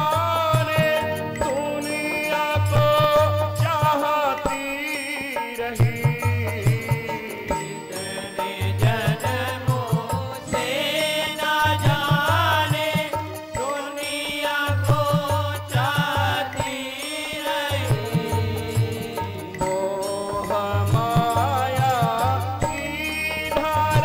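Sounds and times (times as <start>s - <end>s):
harmonium sustained tones: 0.0s - 24.0s
person singing ornamented melody: 0.0s - 24.0s
drum beat: 17.9s - 22.2s.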